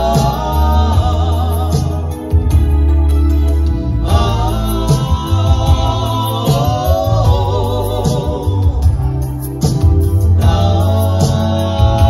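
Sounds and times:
man singing into microphone: 0.0 - 2.4, 4.1 - 9.2, 10.2 - 12.0
electronic keyboard chord: 0.0 - 12.0
heavy bass: 0.0 - 12.0.

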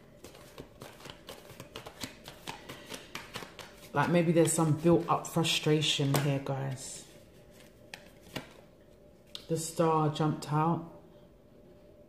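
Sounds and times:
cards being shuffled: 0.2 - 5.1, 6.0 - 8.7.

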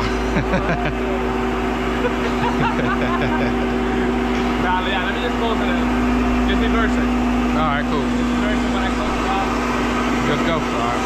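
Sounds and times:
truck engine idling: 0.0 - 11.0
voices talking: 0.0 - 11.0.

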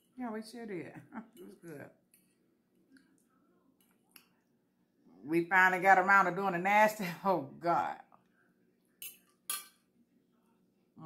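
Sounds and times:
fork clinking on ceramic plate: 9.0 - 9.9.

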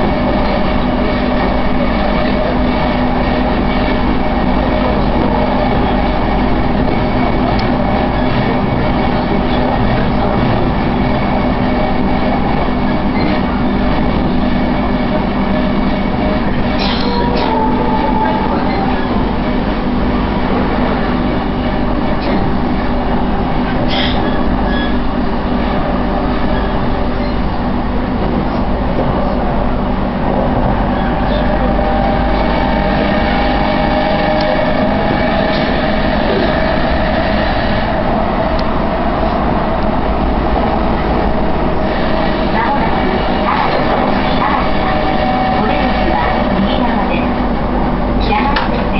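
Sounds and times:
wheels rumbling on rail: 0.0 - 48.9.

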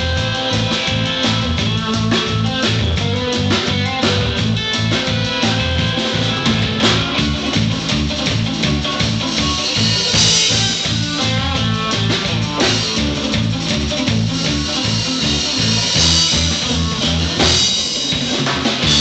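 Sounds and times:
drum kit: 0.0 - 19.0
electric bass line: 0.0 - 19.0
electric lead guitar: 0.0 - 19.0.

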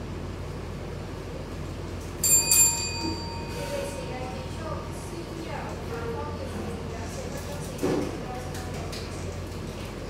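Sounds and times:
low room hum: 0.0 - 10.0
desk bell ringing: 2.2 - 4.5.

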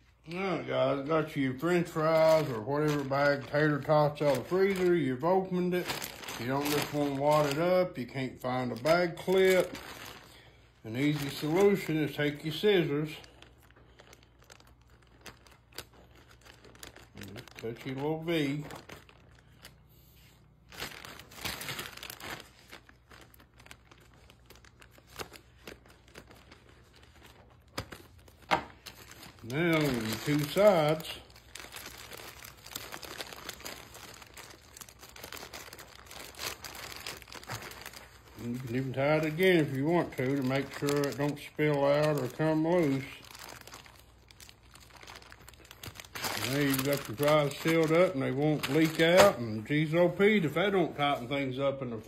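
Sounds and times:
plastic bag crinkling: 0.0 - 52.0.

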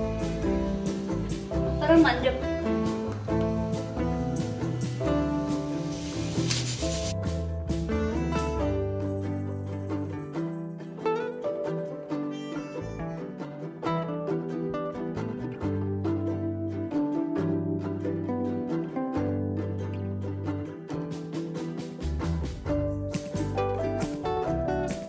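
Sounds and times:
plucked string background music: 0.0 - 25.0.

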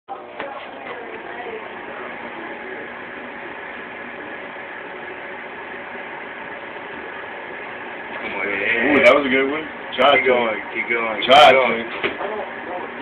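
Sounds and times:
microwave oven humming: 0.1 - 13.0.

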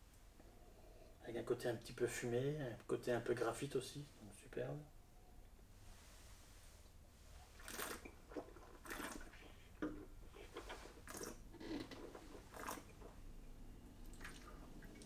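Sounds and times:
slurping wine: 7.3 - 13.2.

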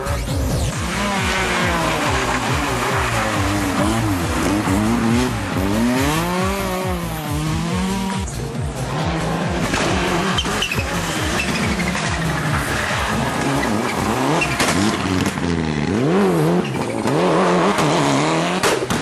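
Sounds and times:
rally car engines revving: 0.0 - 19.0.

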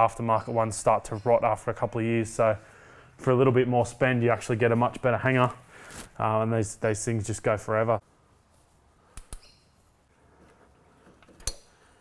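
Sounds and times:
hand tools clicking on metal: 11.2 - 11.8.

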